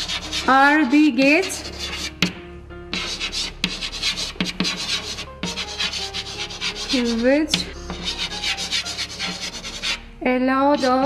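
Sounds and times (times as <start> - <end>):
chalk tapping on board: 0.0 - 0.5, 1.5 - 10.0
chalk scraping on chalkboard: 0.0 - 0.7, 1.3 - 10.0, 10.7 - 11.0.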